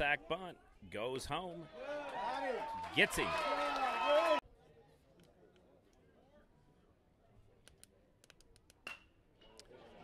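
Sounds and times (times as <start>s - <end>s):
metal bat hitting ball: 8.8s - 9.2s.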